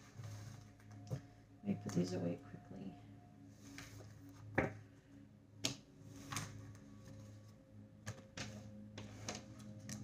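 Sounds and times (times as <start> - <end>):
cards tapping and clicking: 5.6 - 6.6.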